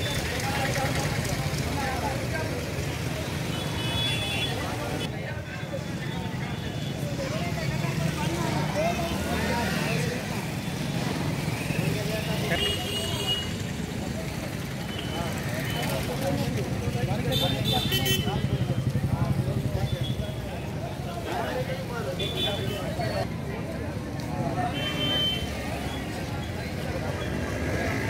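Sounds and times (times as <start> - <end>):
road traffic rumble: 0.0 - 28.0
voices talking: 0.0 - 28.0.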